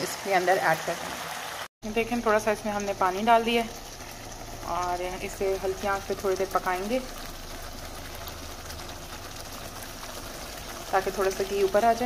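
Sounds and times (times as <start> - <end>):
gravy simmering in a frying pan: 1.2 - 12.0.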